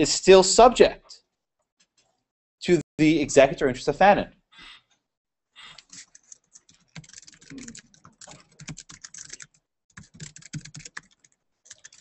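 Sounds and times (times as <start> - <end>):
typing on computer keyboard: 5.8 - 12.0.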